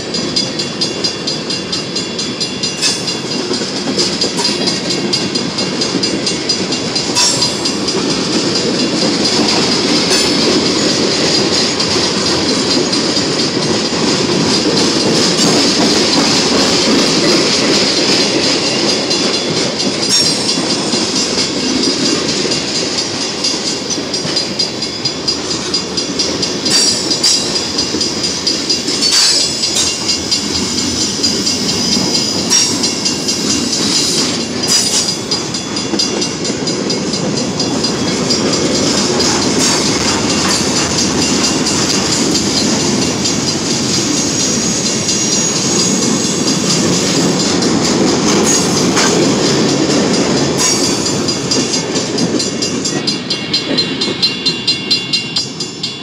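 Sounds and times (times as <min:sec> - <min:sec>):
train wheels rumbling on rail: 0:00.0 - 0:56.0
wheels clicking over rail joints: 0:02.3 - 0:54.8.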